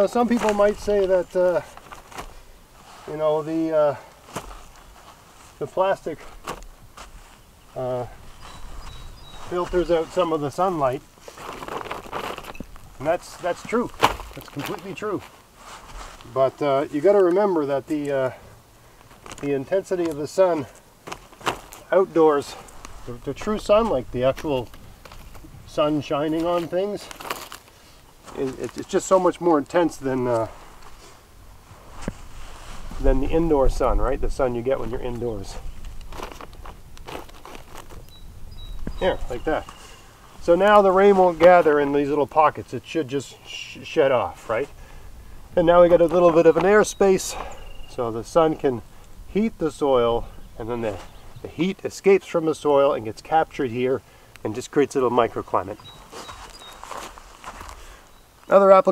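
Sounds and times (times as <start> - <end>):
plastic sheeting rustling: 4.0 - 17.2, 34.9 - 38.1.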